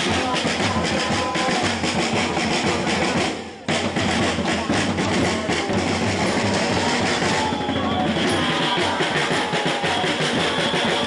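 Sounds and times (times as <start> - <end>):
marching drums: 0.0 - 11.0.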